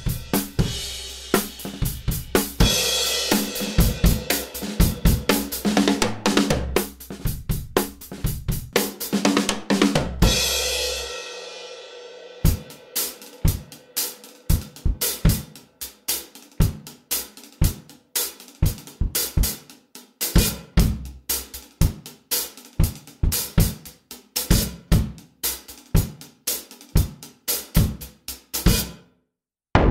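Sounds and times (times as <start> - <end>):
snare drum: 0.0 - 10.5, 12.4 - 29.0
kick drum: 6.0 - 8.8, 14.6 - 15.4, 18.6 - 19.6.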